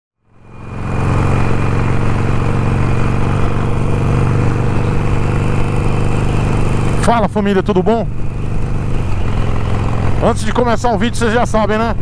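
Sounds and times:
motorcycle engine cruising: 0.2 - 12.0.

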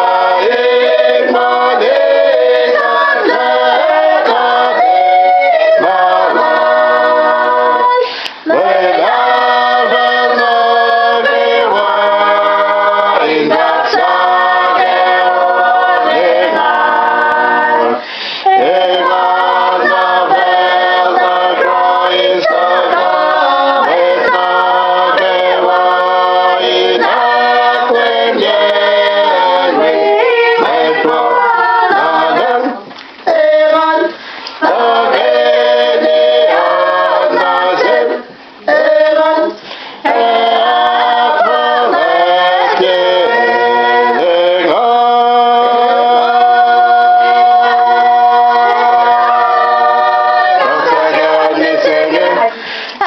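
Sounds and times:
mixed choir singing a hymn: 0.0 - 53.0.

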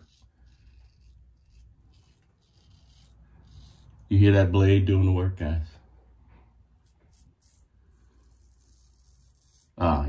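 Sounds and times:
razor scraping stubble: 0.0 - 4.4, 6.7 - 10.0.

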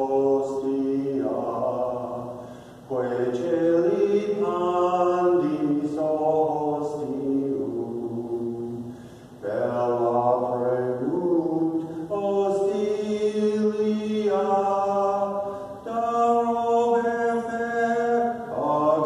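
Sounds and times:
slow sung chant: 0.0 - 19.0.

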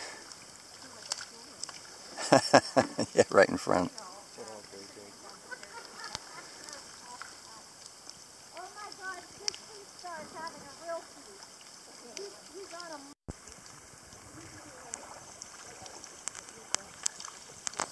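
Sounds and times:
steady background hiss: 0.0 - 17.9
small clicks: 5.7 - 9.8, 15.4 - 17.9.

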